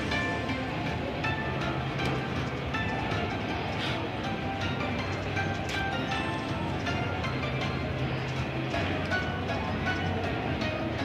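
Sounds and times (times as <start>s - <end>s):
slot machine bonus music: 0.0s - 11.0s.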